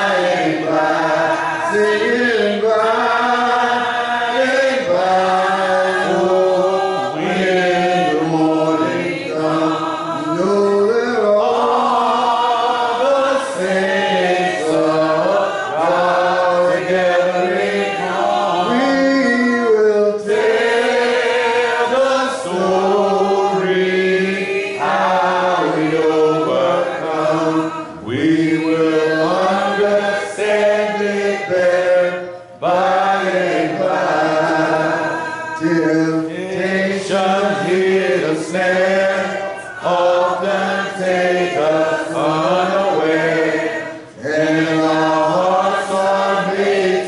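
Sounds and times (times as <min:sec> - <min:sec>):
congregation singing a hymn: 0:00.0 - 0:47.0.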